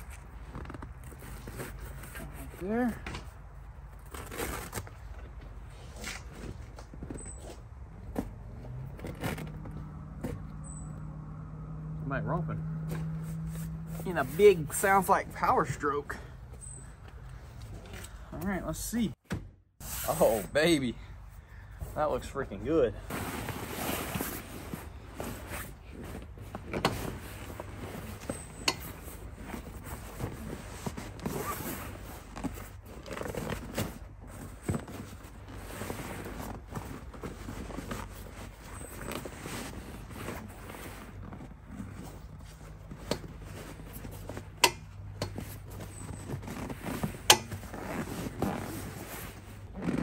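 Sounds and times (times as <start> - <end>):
rustling cloth: 23.0 - 50.0.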